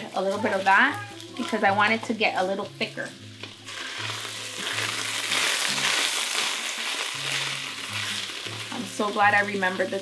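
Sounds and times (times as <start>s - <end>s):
meat sizzling in a pot: 0.0s - 10.0s.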